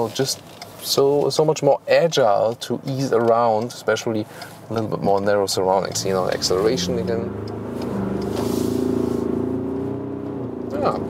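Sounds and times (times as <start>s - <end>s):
diesel engine accelerating: 5.5s - 11.0s.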